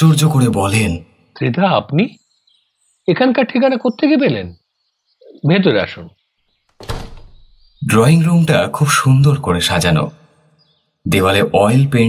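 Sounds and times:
door shutting: 6.7 - 7.6.

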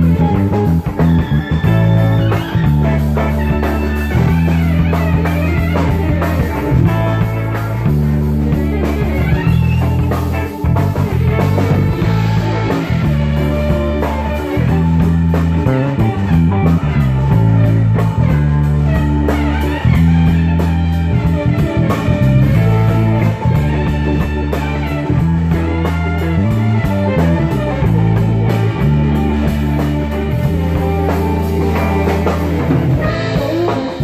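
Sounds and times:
bass line: 0.0 - 34.0
drum kit steady beat: 0.0 - 34.0
electric guitar: 0.0 - 34.0.

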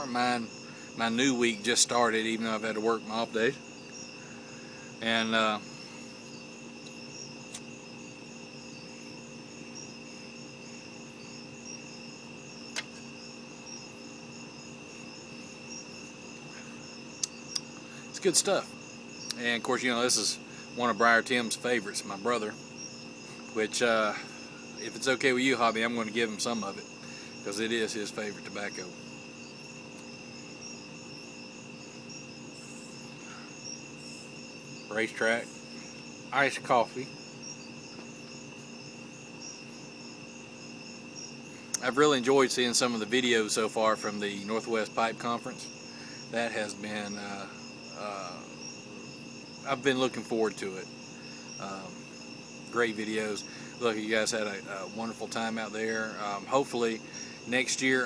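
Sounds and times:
crickets chirping: 0.0 - 58.0
faint steady hum: 0.0 - 58.0.

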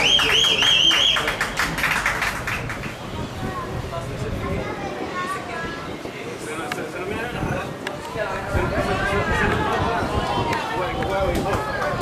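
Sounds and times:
rapid hand clapping: 0.0 - 3.0.

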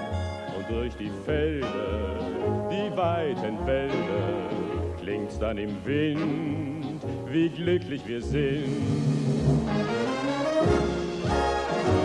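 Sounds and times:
bass line: 0.0 - 12.0
brass section playing: 1.9 - 5.2, 6.0 - 6.8, 8.6 - 12.0.

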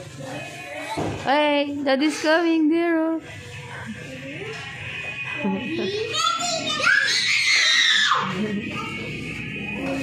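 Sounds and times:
child screaming: 6.1 - 8.3.

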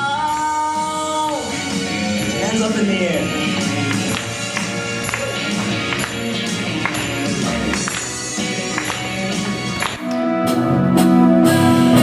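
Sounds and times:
percussion beat: 0.0 - 10.3
instrumental band music: 0.0 - 12.0.

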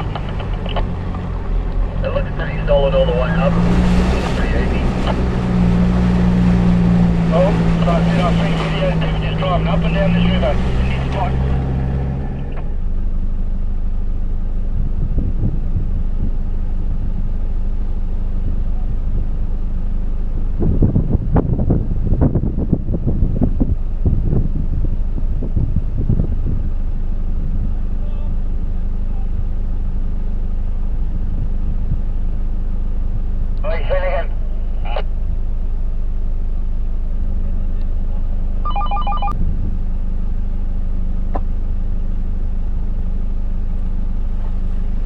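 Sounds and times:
knocks and rattles over rough ground: 0.0 - 2.1
car engine running at low revs: 0.0 - 45.0.

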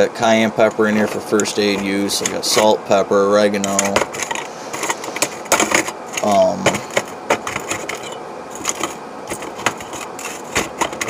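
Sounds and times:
metal items clicking and clinking: 3.6 - 11.0.

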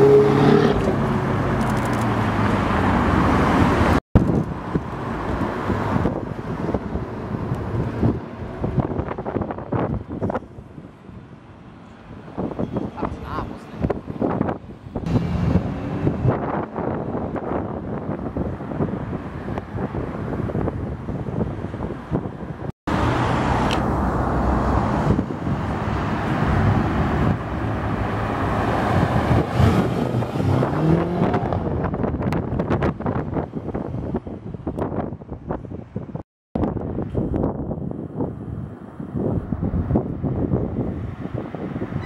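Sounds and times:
wind buffeting microphone: 0.6 - 42.0
car engines accelerating: 12.3 - 20.8, 22.9 - 33.2.

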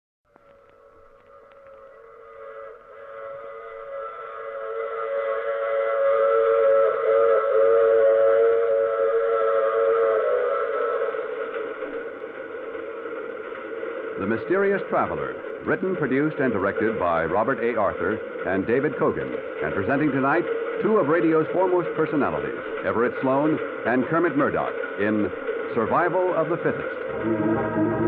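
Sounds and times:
steam train whistle: 0.6 - 12.6, 14.4 - 28.0
faint train rumble: 0.6 - 28.0.

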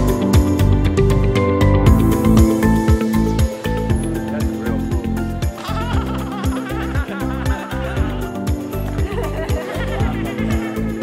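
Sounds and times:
music with steady beat: 0.0 - 11.0.

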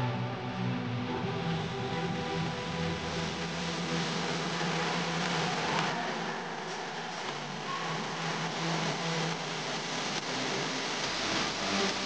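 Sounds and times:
bass: 0.0 - 12.0
held synth chords: 0.0 - 12.0
white-noise build-up: 0.0 - 12.0.

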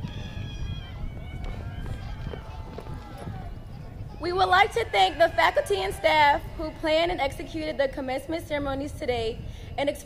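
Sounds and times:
faint distant crowd voices: 0.0 - 10.0
low outdoor rumble: 0.0 - 10.0.

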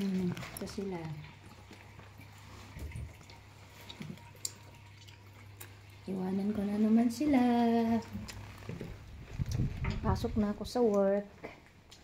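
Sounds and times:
low steady hum: 0.0 - 12.0
water trickling: 0.0 - 12.0.

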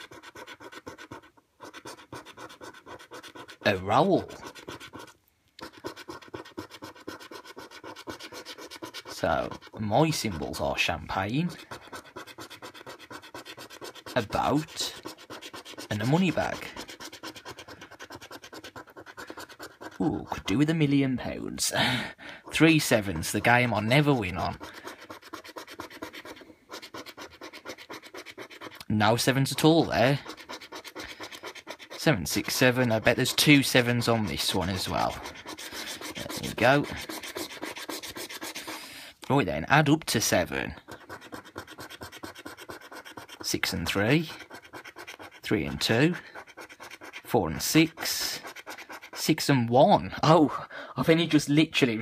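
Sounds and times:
coin scratching a scratchcard: 0.0 - 21.0, 22.5 - 38.9, 39.9 - 49.7.

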